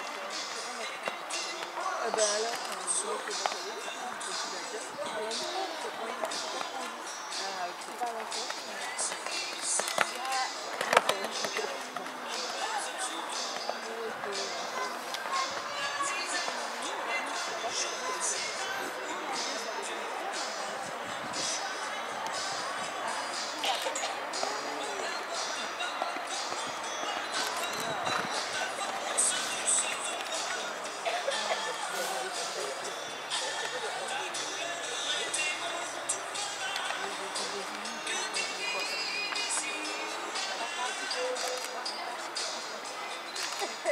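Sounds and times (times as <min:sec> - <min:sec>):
people talking indistinctly: 0:00.0 - 0:43.9.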